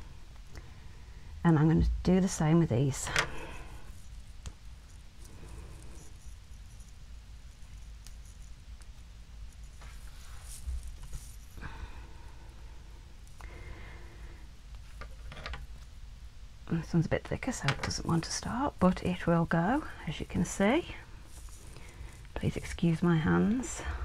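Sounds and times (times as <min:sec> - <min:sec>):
steady low hum: 0:00.0 - 0:24.0
soft rustles and light clicks: 0:02.0 - 0:11.6, 0:14.7 - 0:16.0, 0:16.8 - 0:24.0.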